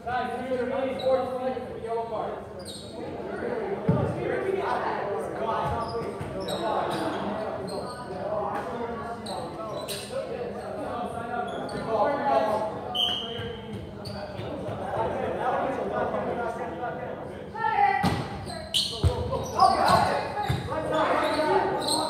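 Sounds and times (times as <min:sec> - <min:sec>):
indistinct chatter in gymnasium: 0:00.0 - 0:22.0
ball bouncing on floor: 0:20.4 - 0:20.7.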